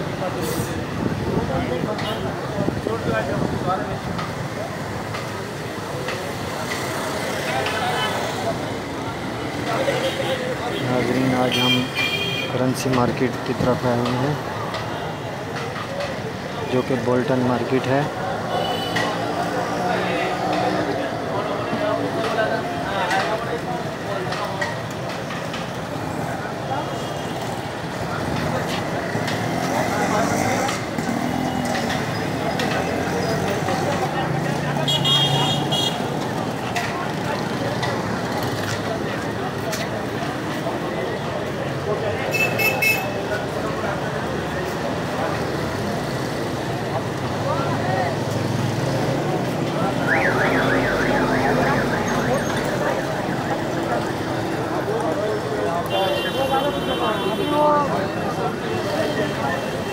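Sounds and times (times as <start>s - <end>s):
people talking: 0.0s - 31.1s, 31.7s - 59.9s
motor traffic: 0.0s - 59.9s
voices: 0.0s - 59.9s
electronic siren warbling: 50.0s - 53.4s.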